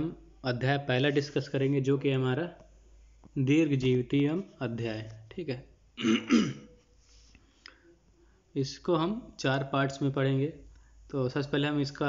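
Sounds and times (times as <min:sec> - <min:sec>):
man clearing his throat: 0:06.0 - 0:06.8.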